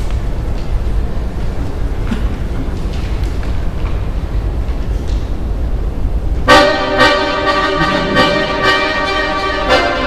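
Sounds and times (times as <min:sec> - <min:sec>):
low noisy rumble: 0:00.0 - 0:10.0
accordion chord: 0:06.5 - 0:10.0.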